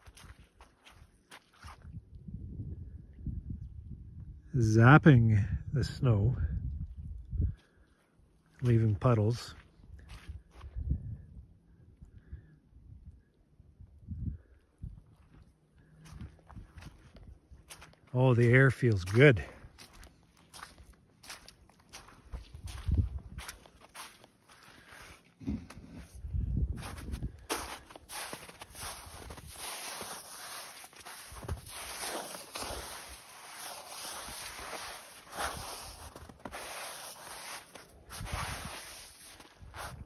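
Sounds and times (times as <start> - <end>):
footsteps in wet snow and slush: 0.0 - 2.0, 7.6 - 10.6, 15.1 - 26.2, 26.8 - 40.0.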